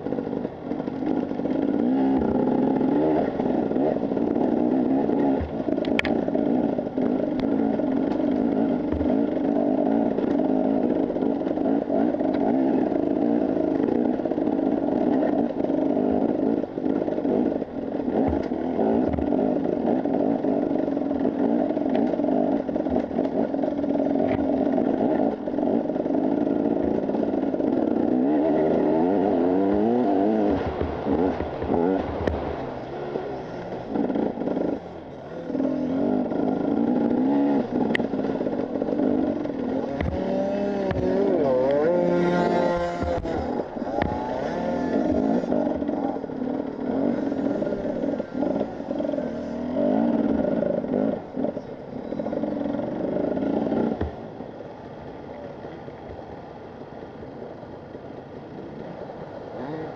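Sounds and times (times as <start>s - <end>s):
motorcycle engine running: 0.0s - 59.9s
bike clattering over rough ground: 0.1s - 35.0s, 35.9s - 50.1s.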